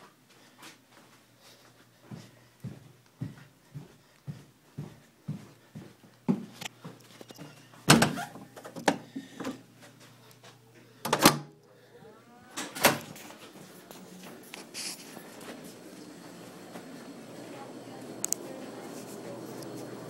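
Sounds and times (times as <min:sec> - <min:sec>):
footsteps: 0:00.0 - 0:07.9, 0:08.5 - 0:10.9, 0:12.4 - 0:17.7
door creaking: 0:07.2 - 0:09.0.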